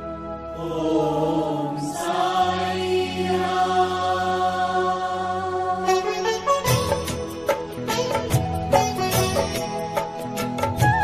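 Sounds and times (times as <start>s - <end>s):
mantra chanting with music: 0.0s - 8.1s.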